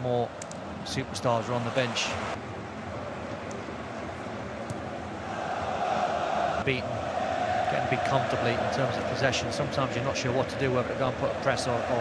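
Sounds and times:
stadium crowd murmur: 2.9s - 12.0s.

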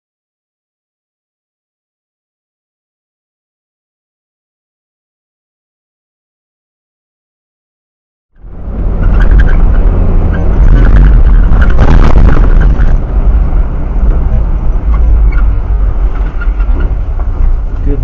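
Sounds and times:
vehicle engine and road rumble: 8.3s - 18.0s.

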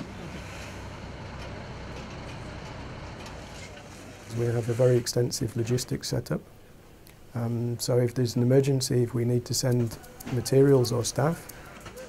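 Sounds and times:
truck engine idling: 0.0s - 4.3s.

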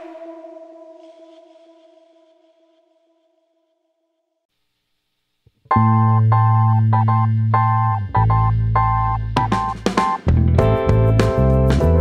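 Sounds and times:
held synthesizer note: 0.0s - 3.7s.

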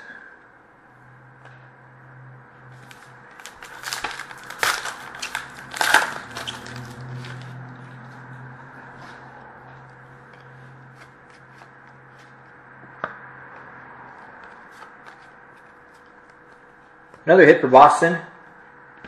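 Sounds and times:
wrapper tearing and crinkling: 2.8s - 7.6s.

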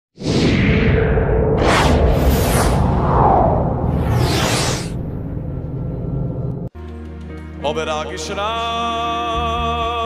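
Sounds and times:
rising swish: 0.2s - 6.7s
whoosh: 0.2s - 6.7s
low rumble: 0.3s - 6.7s.

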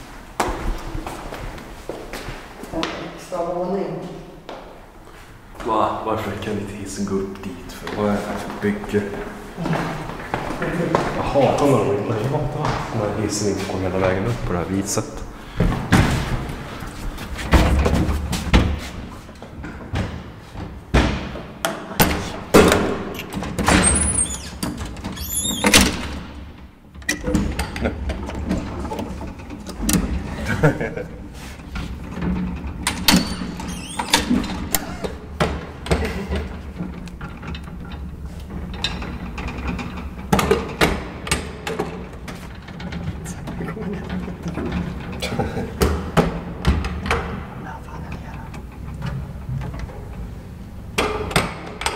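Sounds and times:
metal elevator gate clanking: 22.0s - 31.0s, 32.1s - 43.2s.

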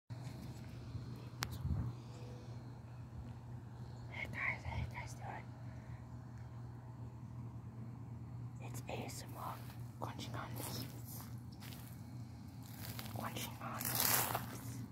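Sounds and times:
steady low hum: 0.1s - 14.9s
woman whispering: 4.1s - 5.6s, 8.6s - 11.4s, 12.9s - 14.9s.

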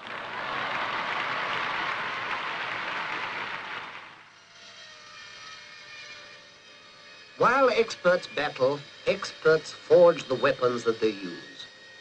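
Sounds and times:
crowd applauding: 0.0s - 4.3s.

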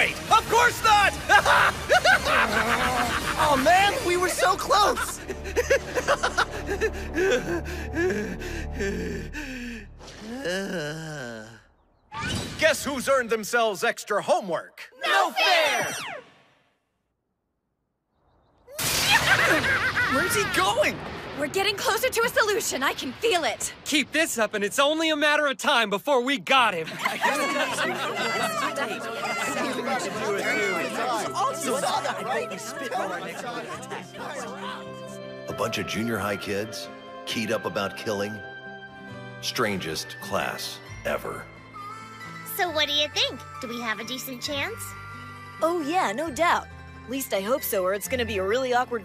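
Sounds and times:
people gasping and sighing: 5.2s - 11.8s, 33.6s - 35.2s
chatter of young voices: 27.2s - 35.2s.

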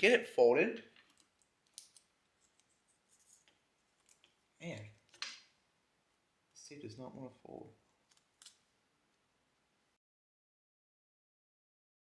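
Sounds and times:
adhesive tape clicks and crackles: 0.9s - 2.7s, 8.1s - 8.6s.

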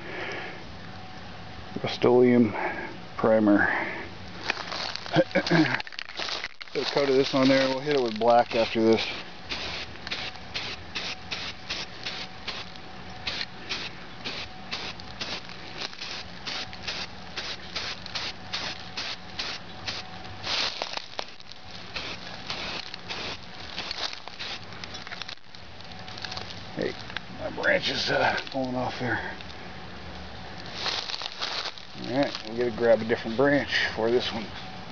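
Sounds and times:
aerosol spray can hissing: 8.5s - 20.8s, 21.9s - 24.6s.

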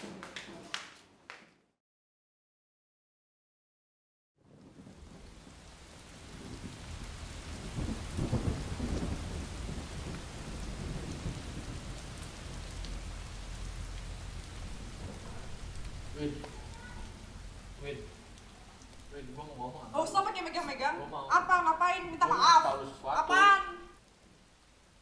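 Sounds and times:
low rumble of thunder: 4.4s - 21.3s
steady rain: 4.4s - 25.0s.

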